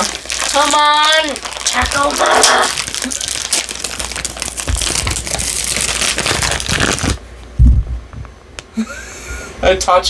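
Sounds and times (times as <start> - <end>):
foil packaging crinkling and tearing: 0.0 - 7.3.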